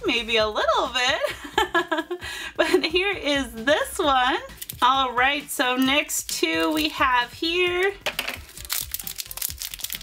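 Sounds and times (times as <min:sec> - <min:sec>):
quiet background music: 0:00.0 - 0:10.0
plastic wrapper crinkling: 0:04.5 - 0:04.8, 0:06.2 - 0:07.0, 0:08.0 - 0:10.0.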